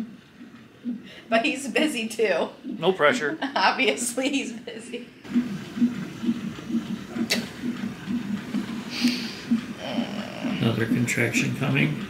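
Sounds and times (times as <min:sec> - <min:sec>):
doppler fetal heartbeat pulsing: 0:00.0 - 0:12.0.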